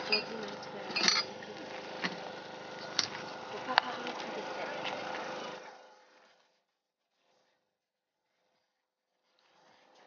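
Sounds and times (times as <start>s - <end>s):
indistinct voices: 0.0s - 5.8s.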